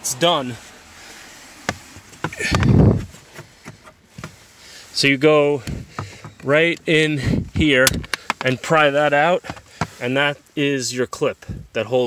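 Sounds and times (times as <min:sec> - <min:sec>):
rustling bump: 0:01.6 - 0:04.5
clicks and taps on plastic trim: 0:07.8 - 0:08.5.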